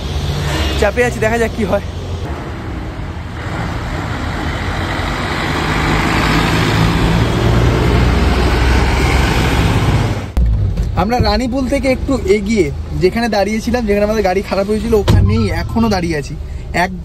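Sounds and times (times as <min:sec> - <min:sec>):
bus passing by: 0:00.0 - 0:10.4.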